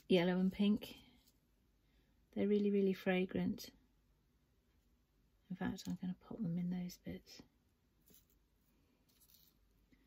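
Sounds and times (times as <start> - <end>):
faint rustles of petals on wood: 8.0 - 10.0.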